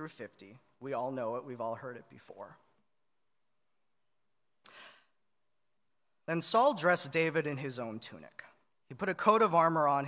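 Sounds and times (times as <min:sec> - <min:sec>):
man breathing in: 0:04.6 - 0:05.2.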